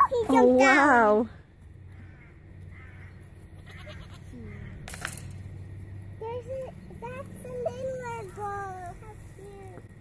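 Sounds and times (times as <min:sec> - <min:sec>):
goats bleating: 0:03.6 - 0:04.4.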